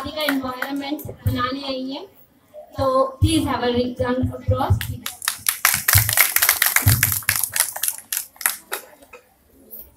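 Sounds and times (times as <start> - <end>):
audience applause: 5.2 - 8.8.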